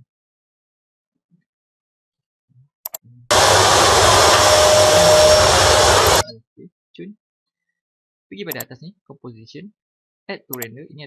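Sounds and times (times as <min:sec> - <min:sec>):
vacuum cleaner running: 0:03.3 - 0:06.3.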